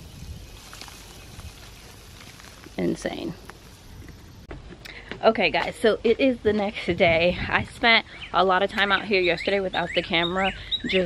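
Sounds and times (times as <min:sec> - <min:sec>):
leaves rustling: 0:00.0 - 0:04.5
soft crackles: 0:00.0 - 0:05.0.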